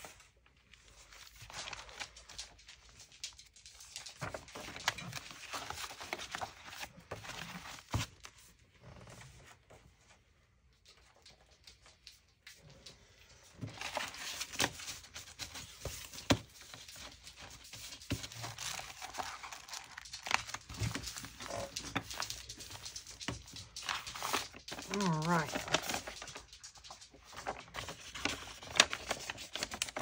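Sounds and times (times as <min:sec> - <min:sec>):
paper pages rustling: 0:00.0 - 0:10.2, 0:10.9 - 0:30.0.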